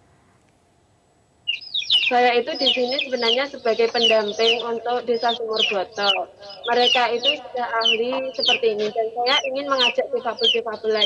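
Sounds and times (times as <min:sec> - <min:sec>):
bird chirping: 0:01.4 - 0:11.0.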